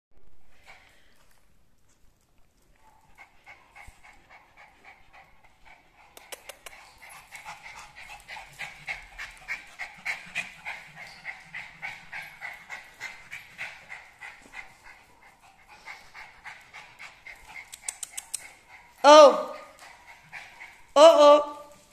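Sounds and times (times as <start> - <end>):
small dog panting: 0.6 - 21.0.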